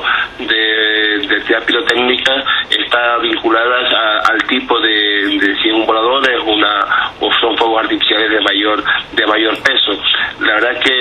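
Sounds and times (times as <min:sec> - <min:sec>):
man talking over telephone line: 0:00.0 - 0:11.0.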